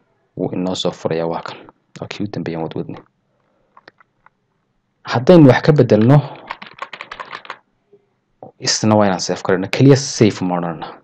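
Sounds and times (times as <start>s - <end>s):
computer keyboard typing: 5.8s - 7.6s.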